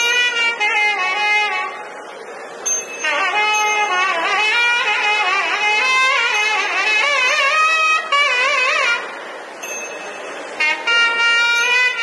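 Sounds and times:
crowd noise: 0.0s - 12.0s
nadaswaram held note: 2.8s - 9.2s.

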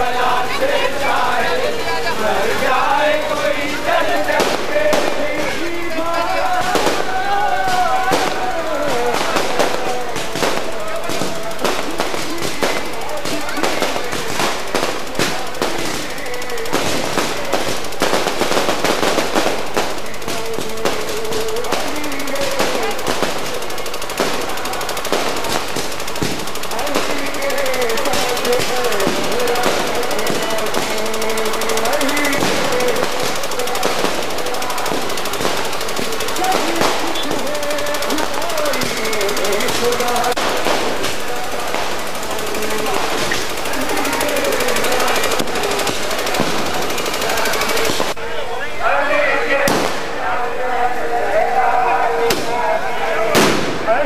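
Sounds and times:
crowd voices: 0.0s - 54.0s
firecrackers crackling: 0.0s - 54.0s.

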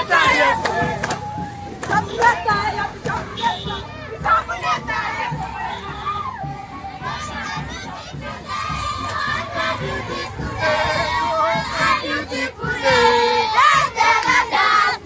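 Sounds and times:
children shouting and cheering: 0.0s - 15.0s.

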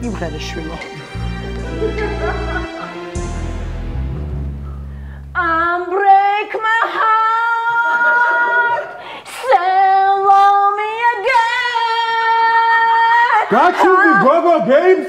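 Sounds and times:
woman singing unaccompanied: 5.4s - 8.8s, 9.4s - 14.2s.

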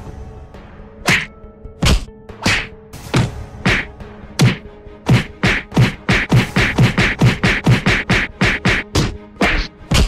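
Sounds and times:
punches and hits whacking: 1.1s - 10.0s.

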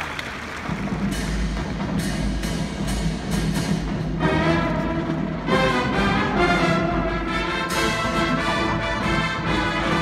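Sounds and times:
drum and cymbal hits: 0.6s - 10.0s.

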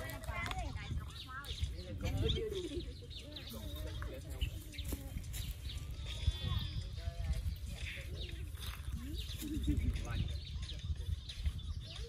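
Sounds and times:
people's voices: 0.0s - 12.0s
wind rumble on microphone: 0.0s - 12.0s.

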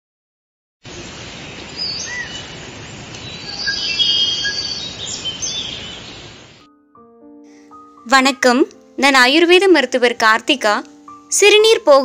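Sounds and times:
steady hiss: 0.9s - 6.7s
birds chirping and whistling: 1.7s - 2.6s, 3.2s - 6.6s.

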